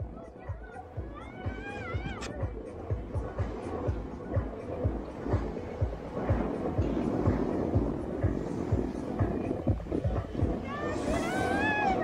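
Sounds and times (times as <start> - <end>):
music with kick-drum beat: 0.0 - 10.6.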